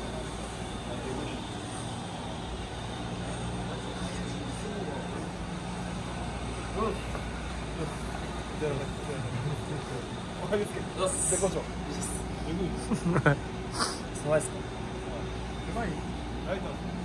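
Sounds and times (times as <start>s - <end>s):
faint voices talking: 0.0s - 17.0s
low mechanical hum: 0.0s - 17.0s.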